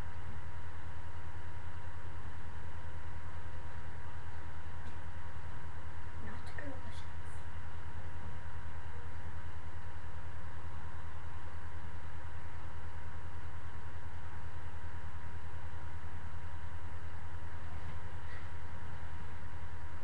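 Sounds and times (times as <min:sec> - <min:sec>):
low electrical hum: 0:00.0 - 0:20.0
microphone hiss: 0:00.0 - 0:20.0
thin constant tone: 0:00.0 - 0:20.0.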